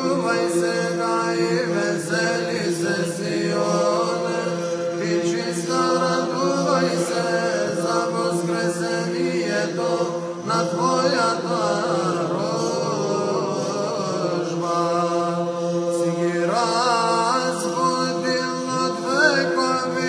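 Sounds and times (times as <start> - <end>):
low held vocal drone: 0.0 - 20.0.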